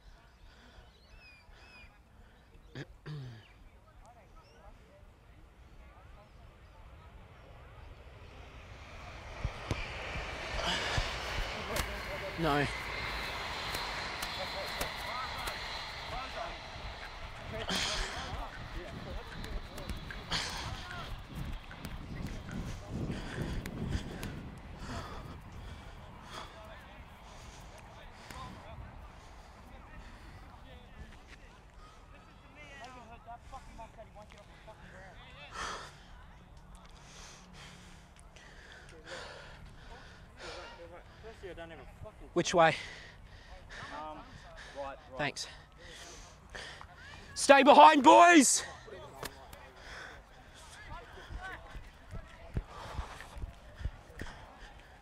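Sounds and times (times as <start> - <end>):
faint distant voices: 0.0 - 47.4, 48.6 - 55.0
wind rumbling on microphone: 7.1 - 31.3, 50.4 - 55.0.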